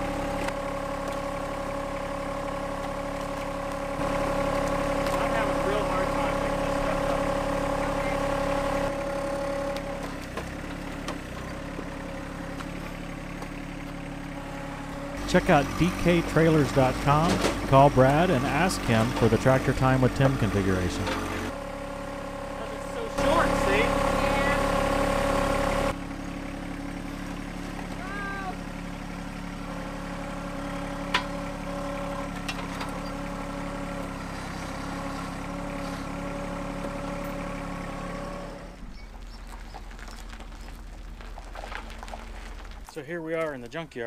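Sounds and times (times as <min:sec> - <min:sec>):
tractor diesel engine running: 0:00.0 - 0:44.0.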